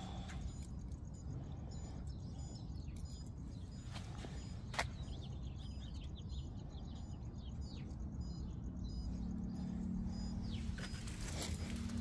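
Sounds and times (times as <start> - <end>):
low outdoor rumble: 0.0 - 12.0
low steady hum: 0.0 - 12.0
small birds chirping: 0.0 - 12.0.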